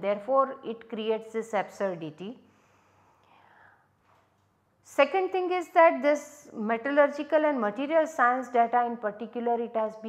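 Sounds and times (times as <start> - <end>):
woman speaking: 0.0 - 2.4, 4.9 - 10.0
faint breath: 2.4 - 4.0.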